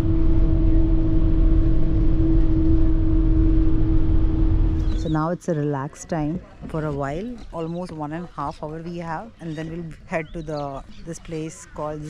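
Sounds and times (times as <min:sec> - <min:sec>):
constant whine: 0:00.0 - 0:10.1.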